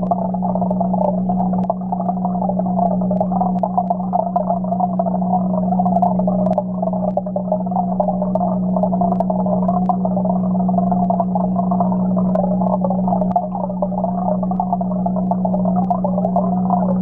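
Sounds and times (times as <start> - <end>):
aquarium equipment humming underwater: 0.0 - 17.0
faint clicks: 0.0 - 17.0
wavering muffled tone: 0.0 - 17.0.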